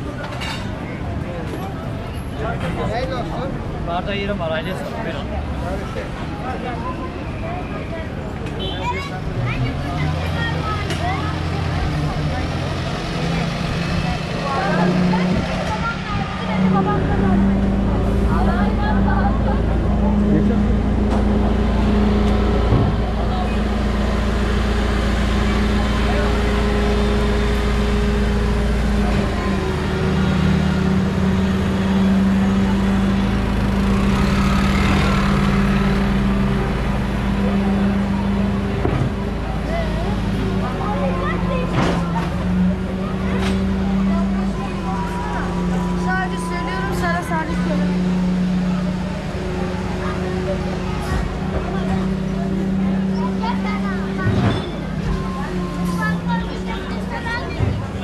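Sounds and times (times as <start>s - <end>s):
garbage truck diesel engine: 0.0s - 58.0s
people talking: 0.0s - 58.0s.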